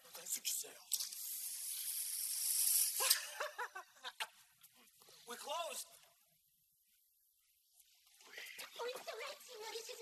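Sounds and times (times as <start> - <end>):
gas hissing: 1.1 - 3.2.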